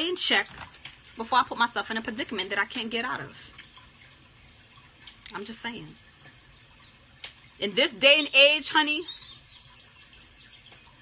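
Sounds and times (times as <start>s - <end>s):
woman's voice: 0.0s - 0.6s, 1.2s - 3.5s, 5.3s - 6.0s, 7.6s - 9.2s.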